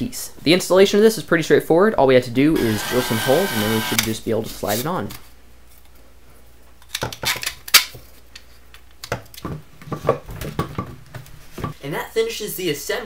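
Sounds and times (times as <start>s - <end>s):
plastic parts clicking and knocking: 6.8s - 11.0s.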